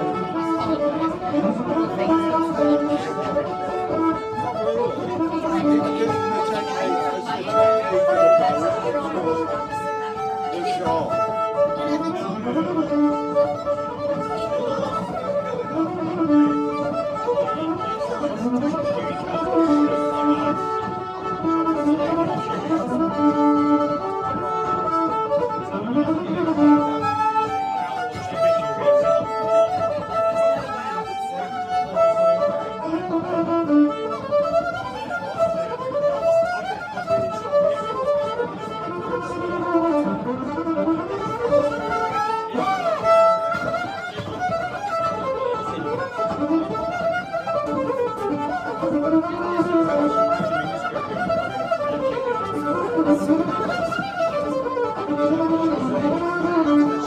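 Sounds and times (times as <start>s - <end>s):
fiddle playing a tune: 0.0s - 57.0s.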